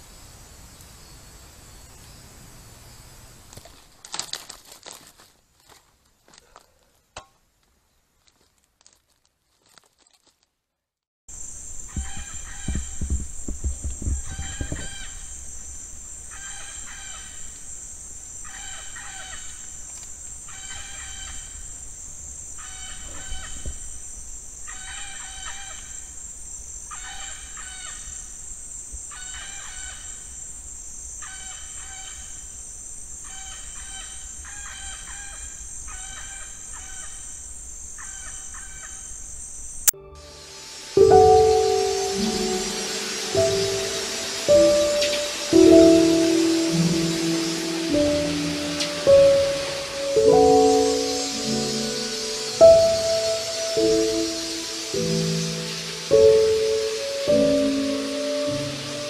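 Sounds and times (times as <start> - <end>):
high insect drone: 11.3 - 59.0
low thumps on microphone: 11.8 - 15.3.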